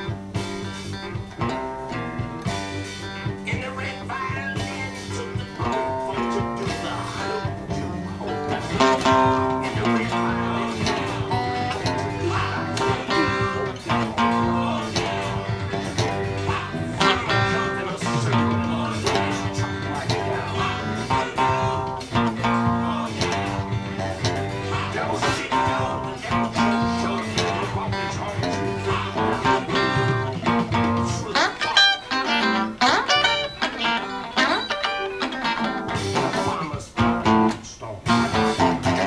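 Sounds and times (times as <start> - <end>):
band with bass and drums: 0.0 - 39.0
electric guitar rock-blues riff: 0.0 - 39.0.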